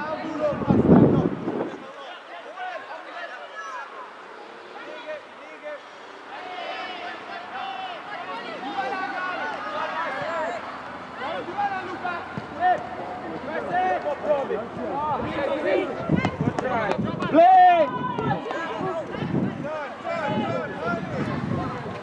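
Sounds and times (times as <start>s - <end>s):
players shouting and calling: 0.0s - 22.0s
loud drawn-out shout: 2.0s - 21.7s.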